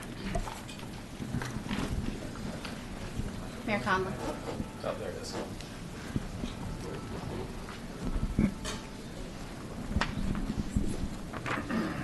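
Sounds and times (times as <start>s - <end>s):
low murmur of voices: 0.0s - 12.0s
shuffling footsteps: 0.5s - 11.4s.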